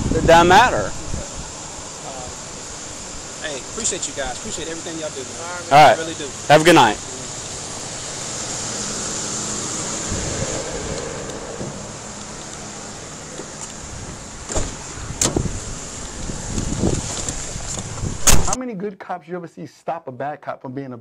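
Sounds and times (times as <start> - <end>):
wind noise on microphone: 0.0 - 1.6, 9.6 - 18.6
outdoor rumble: 0.0 - 18.6.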